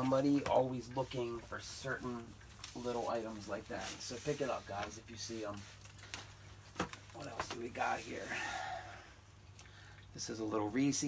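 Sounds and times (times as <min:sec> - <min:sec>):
low steady hum: 0:00.0 - 0:11.0
man speaking: 0:07.2 - 0:08.5
breathy exhale: 0:08.2 - 0:10.0.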